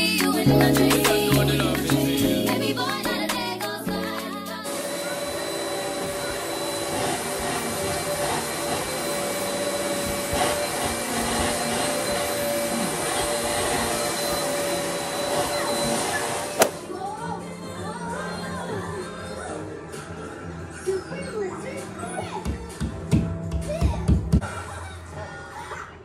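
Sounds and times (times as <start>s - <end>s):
vacuum cleaner running: 4.6s - 16.9s.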